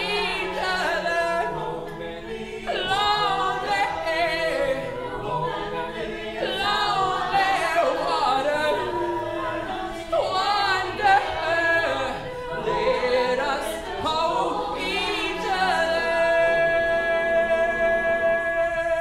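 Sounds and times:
backing voices singing chords: 0.0s - 19.0s.

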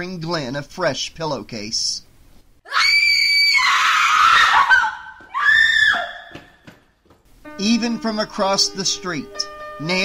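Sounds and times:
woman screaming: 2.7s - 6.5s.

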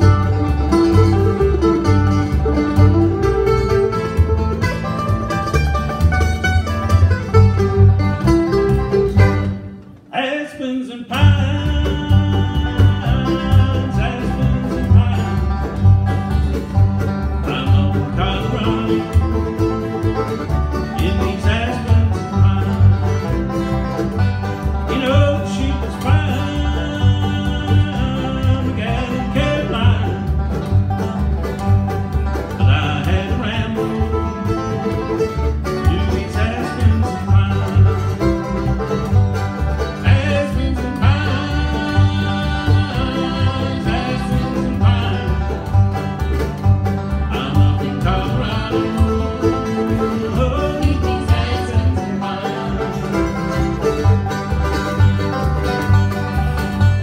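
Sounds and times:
upright bass plucking: 0.0s - 10.0s, 11.1s - 57.0s
acoustic guitar: 0.0s - 57.0s
banjo rolls: 0.0s - 57.0s
mandolin: 0.0s - 57.0s.

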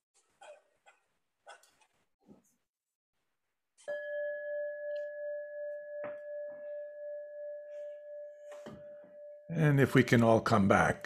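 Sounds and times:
singing bowl ringing: 3.9s - 9.7s.

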